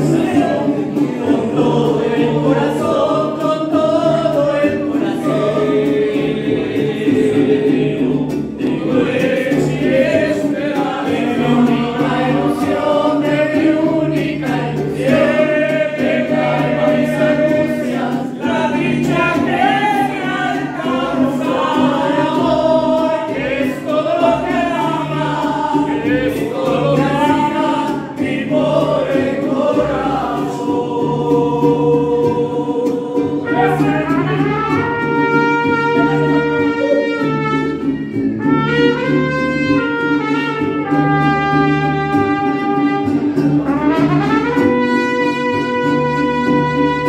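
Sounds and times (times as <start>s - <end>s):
men singing together: 0.0s - 36.4s
steady bass: 0.0s - 47.0s
strummed guitars: 0.0s - 47.0s
held trumpet notes: 33.4s - 47.0s.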